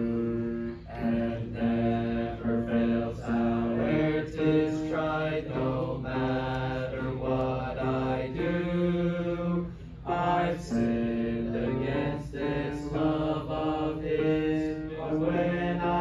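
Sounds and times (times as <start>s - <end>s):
congregation singing a hymn: 0.0s - 16.0s.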